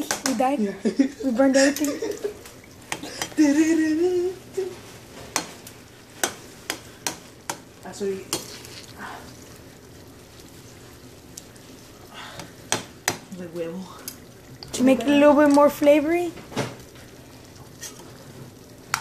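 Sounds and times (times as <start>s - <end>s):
eggs sizzling in a pan: 0.0s - 19.0s.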